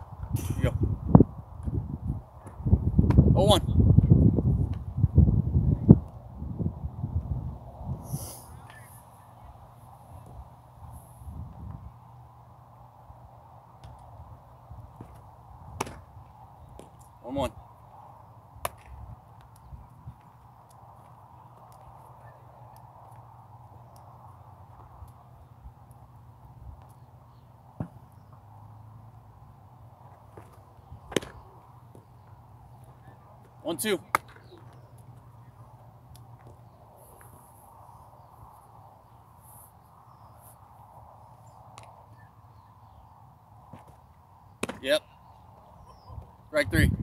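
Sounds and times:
distant bat cracks: 0:15.0 - 0:17.1, 0:18.6 - 0:19.6, 0:30.3 - 0:32.1, 0:34.0 - 0:35.2, 0:43.7 - 0:44.8.

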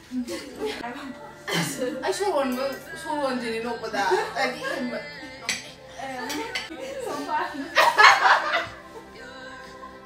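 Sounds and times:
cutlery clinking on plates: 0:05.4 - 0:06.7.

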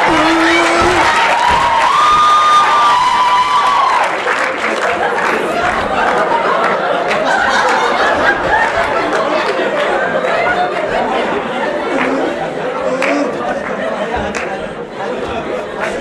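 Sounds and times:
babble of voices in a hall: 0:00.0 - 0:16.0.

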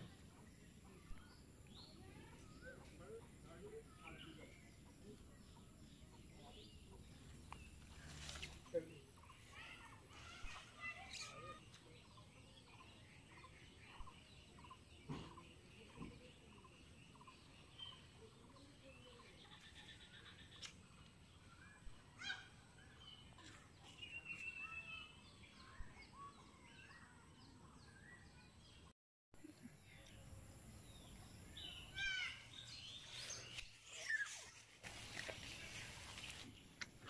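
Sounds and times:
bird chirps: 0:00.8 - 0:28.9, 0:30.8 - 0:36.9.

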